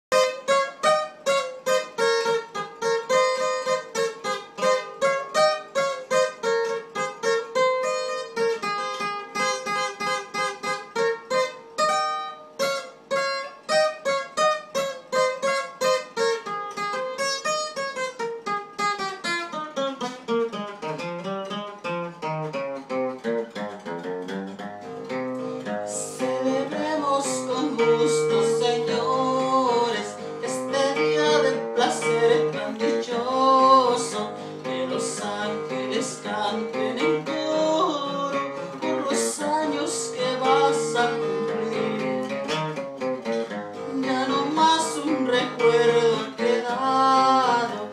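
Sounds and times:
acoustic guitar playing: 0.0 - 47.9.

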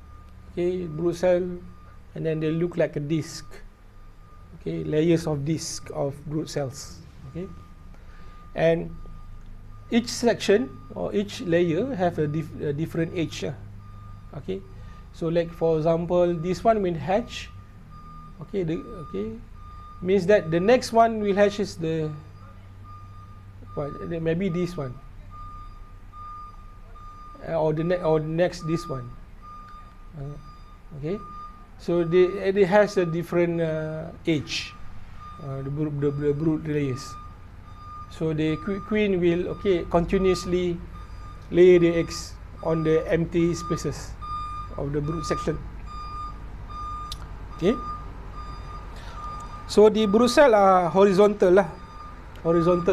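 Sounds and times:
faint high beep tone: 0.0 - 52.9
man speaking: 0.6 - 3.7, 4.6 - 7.6, 8.6 - 9.0, 9.9 - 13.6, 14.4 - 17.5, 18.4 - 19.4, 20.0 - 22.3, 23.7 - 25.0, 27.4 - 29.2, 30.2 - 34.8, 35.4 - 37.2, 38.1 - 40.9, 41.5 - 45.7, 47.6 - 47.8, 49.7 - 51.8, 52.4 - 52.9.

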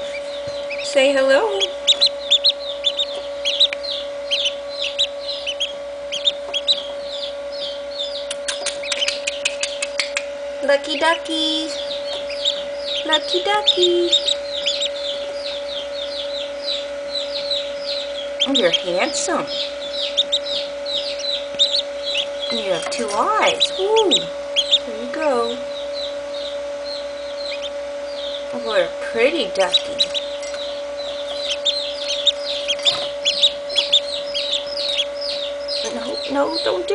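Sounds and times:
duckling peeping: 0.0 - 36.9
steady hum: 0.0 - 36.9.

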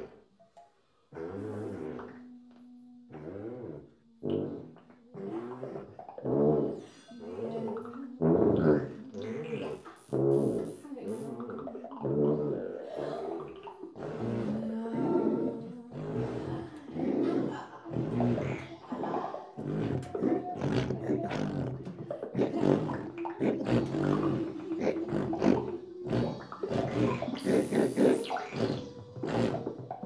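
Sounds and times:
woman making rough vocal sounds: 1.4 - 30.0.

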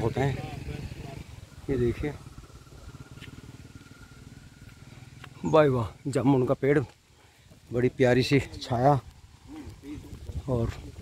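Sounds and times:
small engine running: 0.0 - 6.0
faint steady whine: 0.0 - 11.0.

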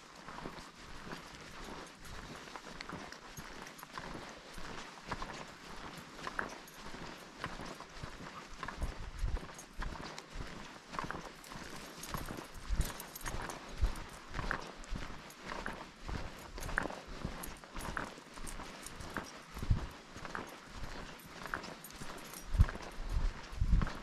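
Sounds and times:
footsteps on dirt trail: 0.0 - 24.0.

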